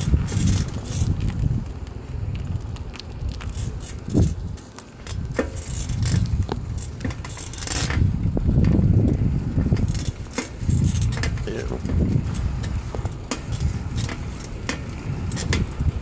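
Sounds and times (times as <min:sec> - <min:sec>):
bicycle rolling on pavement: 0:00.0 - 0:16.0
metallic rattles from bike: 0:00.0 - 0:16.0.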